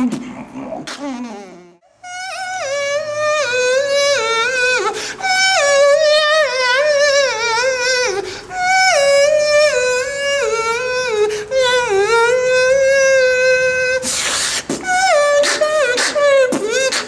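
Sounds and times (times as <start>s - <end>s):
beatboxing hissing burst: 14.0s - 17.0s
beatboxing synth-like line: 14.0s - 17.0s.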